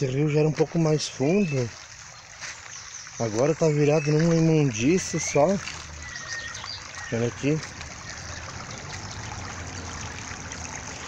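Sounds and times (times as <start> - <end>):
creek water trickling over stones: 0.0 - 11.0.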